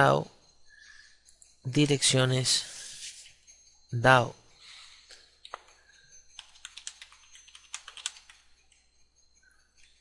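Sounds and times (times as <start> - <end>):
faint keyboard typing: 5.4 - 10.0.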